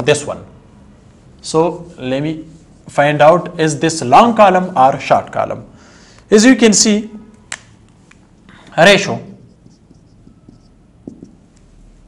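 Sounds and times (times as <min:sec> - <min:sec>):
marker writing on whiteboard: 0:09.0 - 0:11.8.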